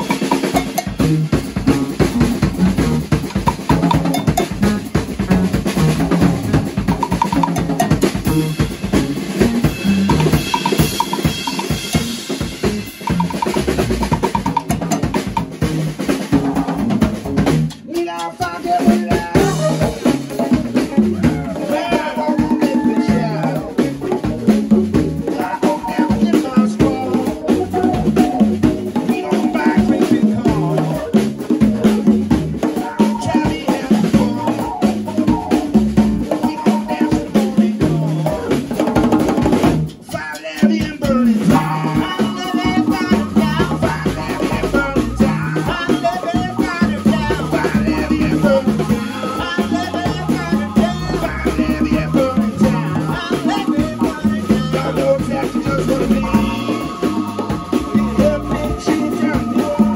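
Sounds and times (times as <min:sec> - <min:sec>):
electric guitar: 0:00.0 - 0:40.2, 0:40.8 - 0:59.9
bass guitar: 0:00.0 - 0:59.9
congas: 0:00.0 - 0:59.9
drums: 0:00.0 - 0:59.9
held high note: 0:03.9 - 0:04.8.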